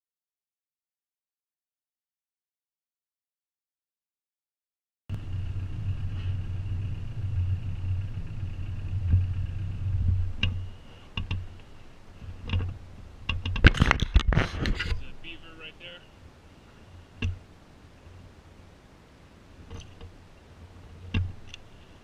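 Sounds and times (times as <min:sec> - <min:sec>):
boat motor humming: 0:05.1 - 0:22.0
reel clicks: 0:21.0 - 0:21.7.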